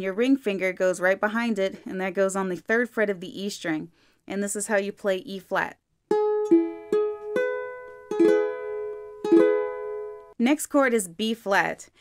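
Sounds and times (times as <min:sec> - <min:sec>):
ukulele notes and strummed chord: 0:06.1 - 0:10.4.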